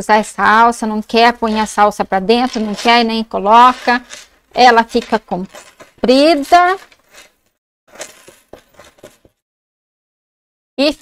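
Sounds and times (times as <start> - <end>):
chain scraping across a table: 1.3 - 9.4
metal chain strap rattling: 5.0 - 7.3, 7.9 - 9.3.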